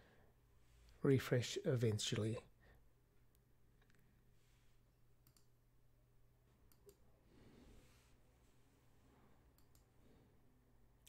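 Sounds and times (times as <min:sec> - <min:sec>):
faint computer mouse clicks: 0:05.2 - 0:05.5, 0:06.7 - 0:07.0, 0:09.5 - 0:09.9.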